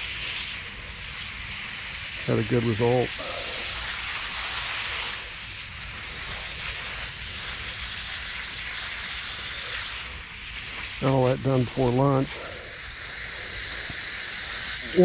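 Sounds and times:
hose spraying water onto grass: 0.0 - 15.0.

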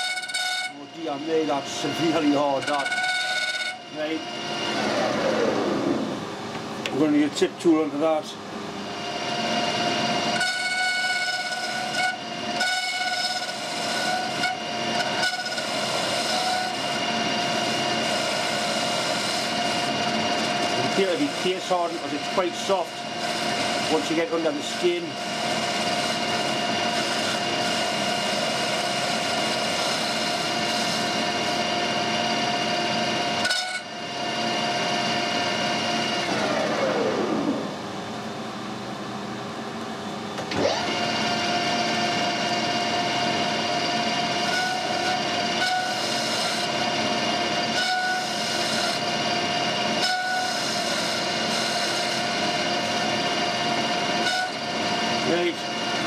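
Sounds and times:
metal lathe gear whine: 0.0 - 39.4, 40.0 - 56.0
lathe winding down: 4.0 - 6.3, 15.5 - 37.8, 40.5 - 56.0.

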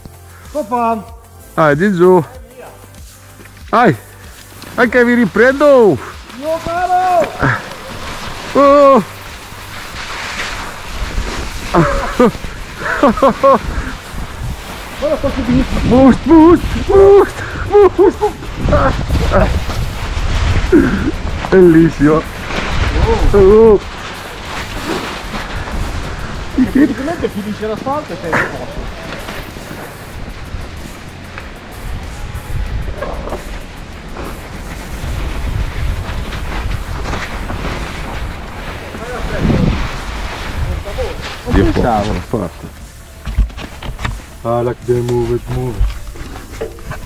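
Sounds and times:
person shouting: 6.6 - 7.5
wind buffeting microphone: 13.6 - 42.3.

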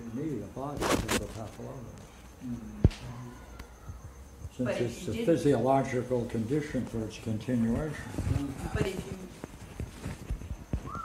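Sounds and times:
voices: 0.0 - 9.6.

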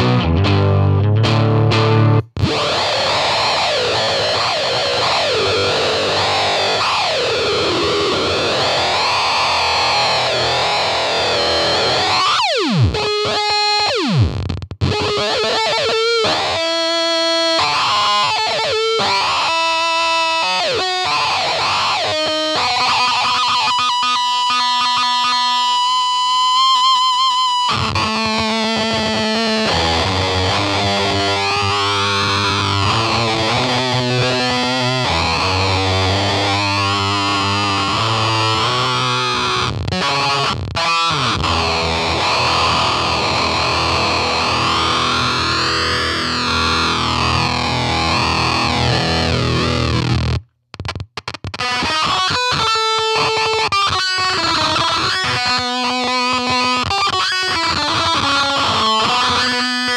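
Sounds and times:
heavily fuzzed electric guitar: 0.0 - 59.9.

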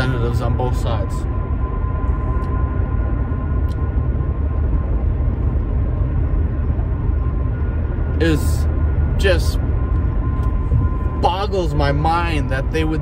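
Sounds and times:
car road and engine rumble: 0.0 - 13.0
faint steady whine: 0.0 - 13.0.

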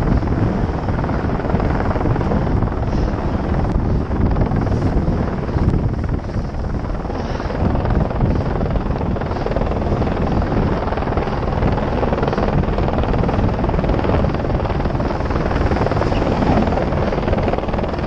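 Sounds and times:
wind buffeting microphone: 0.0 - 18.0
snowboard gliding on snow: 15.0 - 17.2.

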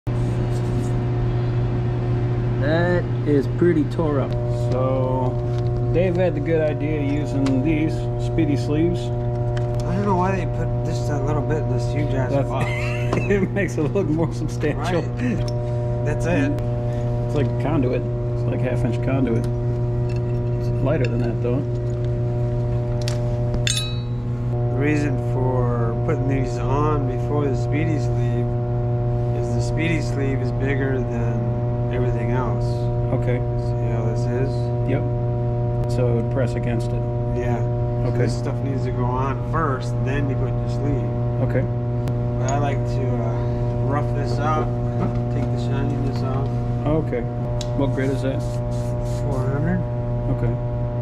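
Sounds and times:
low machinery hum: 0.1 - 51.0.

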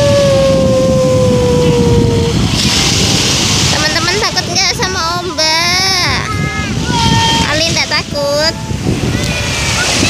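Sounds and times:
motorboat engine droning: 0.0 - 10.0
wave washing up sand: 0.0 - 10.0
wind and surf rumble: 0.0 - 10.0.

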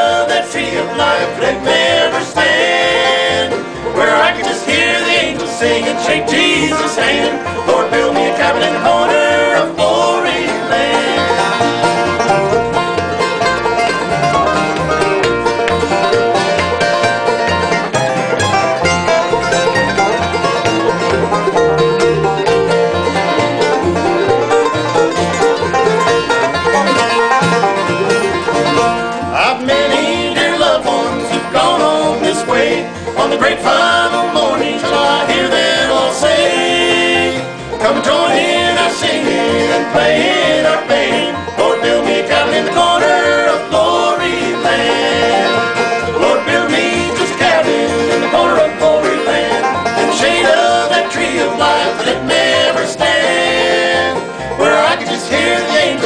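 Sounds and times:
banjo picking rapid rolls: 0.0 - 56.0
bluegrass band playing: 0.0 - 56.0.

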